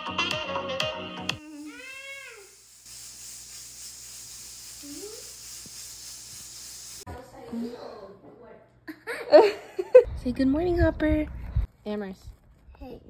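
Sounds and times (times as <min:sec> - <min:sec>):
music: 0:00.0 - 0:01.4
steady hiss: 0:01.4 - 0:07.1.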